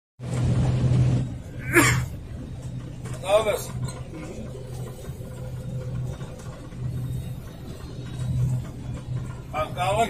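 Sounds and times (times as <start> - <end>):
combine harvester drone: 0.2 - 10.0.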